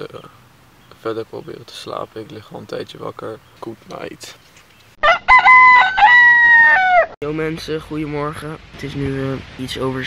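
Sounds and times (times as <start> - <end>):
rooster crowing: 5.0 - 7.2.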